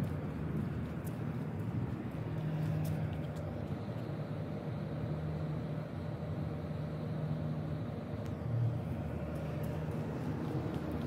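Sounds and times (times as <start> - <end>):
low mechanical hum: 0.0 - 11.0
outdoor background noise: 0.0 - 11.0.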